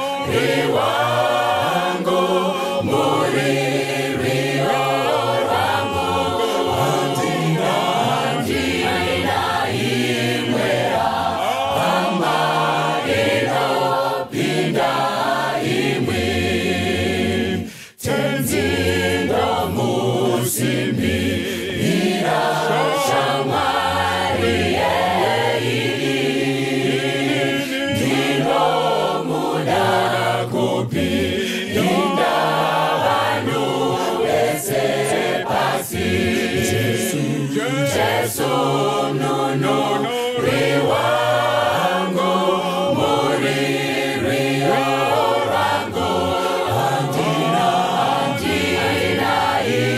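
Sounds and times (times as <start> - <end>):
mixed choir singing a cappella: 0.0 - 49.9.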